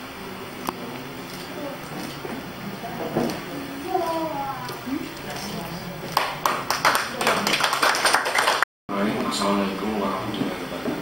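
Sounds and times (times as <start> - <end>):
background chatter: 0.0 - 7.8
people clapping: 4.7 - 8.7.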